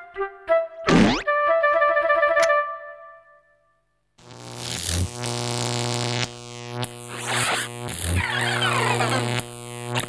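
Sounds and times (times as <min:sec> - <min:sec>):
loud electric buzz: 0:04.2 - 0:10.0.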